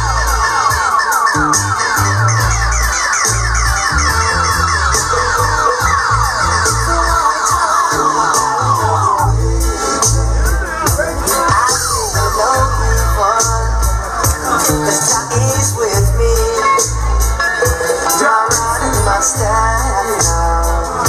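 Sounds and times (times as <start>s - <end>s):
repeating falling-tone effect: 0.0s - 9.3s
dub reggae over sound system: 0.0s - 21.0s.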